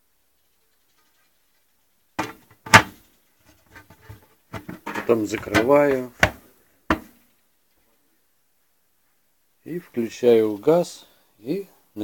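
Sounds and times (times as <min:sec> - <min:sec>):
handling noise: 0:02.2 - 0:07.3
metal lid clanking: 0:04.6 - 0:07.1.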